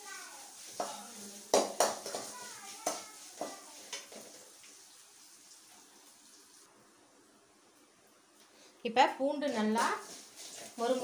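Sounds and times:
spices sizzling in hot oil: 0.0 - 6.7, 9.2 - 11.0
metal ladle scraping a pan: 9.5 - 11.0.

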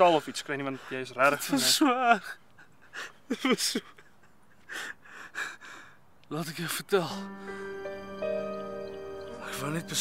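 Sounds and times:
man gasping breaths: 4.7 - 6.1.

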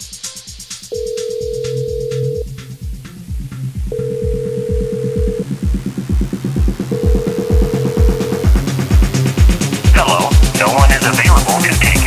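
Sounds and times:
telephone ringback tone: 0.9 - 2.5, 3.9 - 5.5, 6.9 - 8.6
electronic dance music: 5.4 - 12.0.

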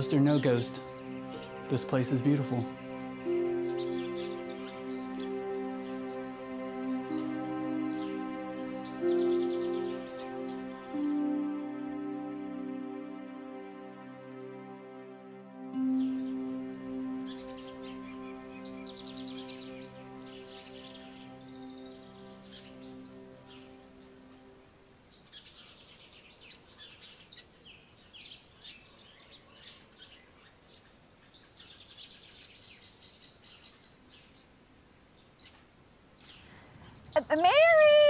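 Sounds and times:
songbirds trilling and chirping: 0.0 - 12.6, 15.8 - 38.0
held music chord: 0.0 - 25.6.

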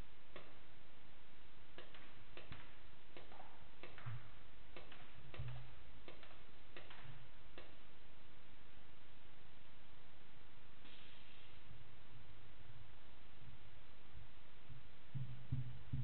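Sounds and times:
sharp clicks and taps: 0.3 - 0.6, 1.8 - 4.2, 4.8 - 7.8.

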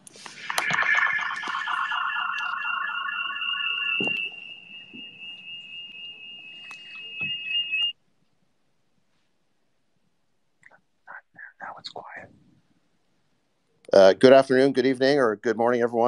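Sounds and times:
fast pulsing electronic tone: 0.4 - 7.8
high steady electronic tone: 0.4 - 7.9.

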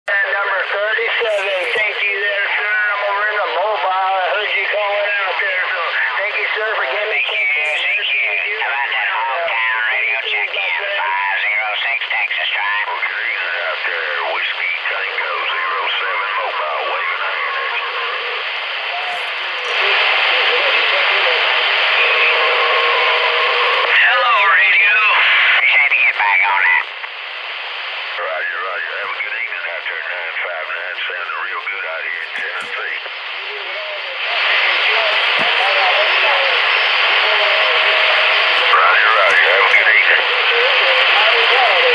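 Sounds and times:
steady radio tone: 0.1 - 41.9
voices over radio: 0.1 - 41.9
static hiss: 1.2 - 1.9, 17.0 - 24.0, 31.7 - 41.9.

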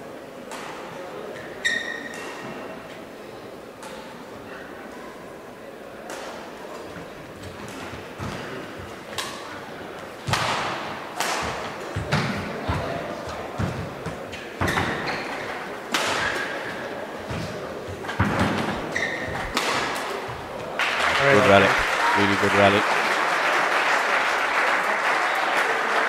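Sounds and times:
shoes squeaking on court: 1.4 - 2.7, 12.0 - 20.7
rackets hitting shuttlecock: 10.2 - 20.3.

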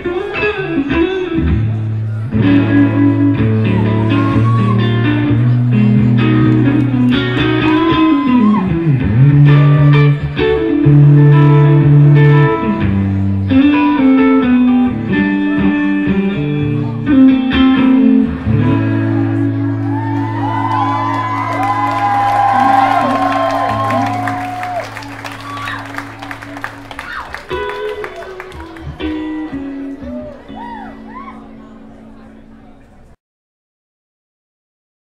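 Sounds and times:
live blues band: 0.0 - 31.9
guitar bent sliding notes: 0.0 - 32.6.

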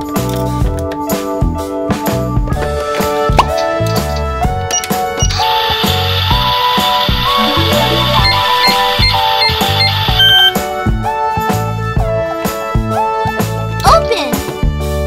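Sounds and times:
children's music with steady beat: 0.0 - 15.0
electronic hiss with short beeps: 5.2 - 10.6
brief higher electronic tone: 6.8 - 10.6.

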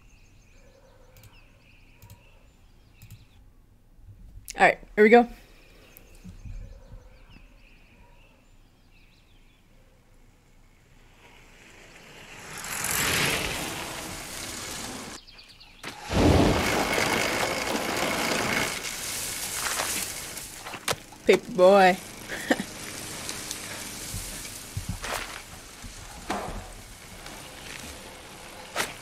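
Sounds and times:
faint birdsong: 0.0 - 16.1
street ambience: 0.0 - 29.0
steady rushing noise: 10.7 - 15.2, 15.9 - 29.0.

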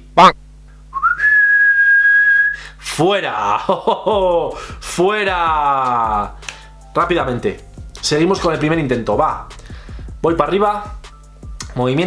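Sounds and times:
whistled note sliding up: 1.0 - 2.6.

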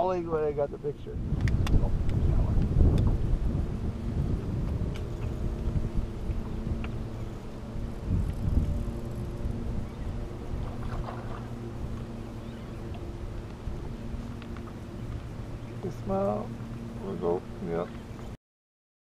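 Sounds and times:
boat motor humming: 0.0 - 18.4
wind rumbling on microphone: 0.0 - 18.4.

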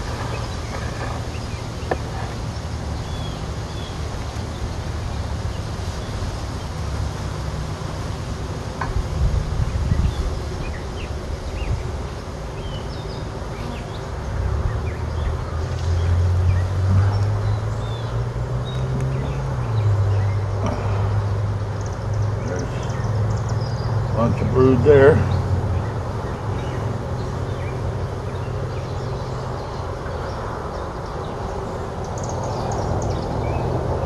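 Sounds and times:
bees buzzing: 0.0 - 34.0.

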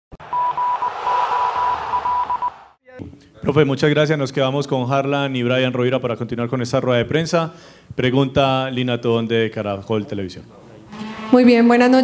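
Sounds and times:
broken high beep: 0.2 - 2.6.

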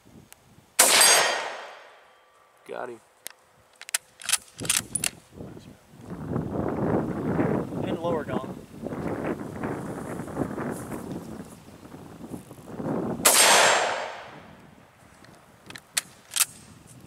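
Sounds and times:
rifle shot: 0.8 - 2.0, 13.2 - 14.4.

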